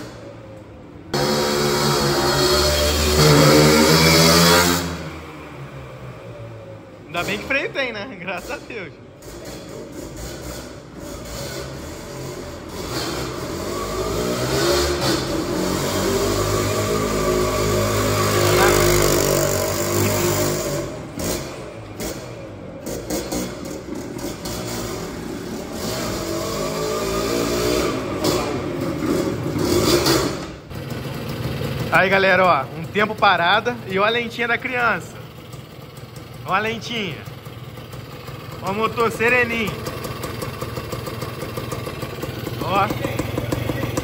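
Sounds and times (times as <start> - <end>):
two-stroke motorcycle engine: 8.3 - 44.0.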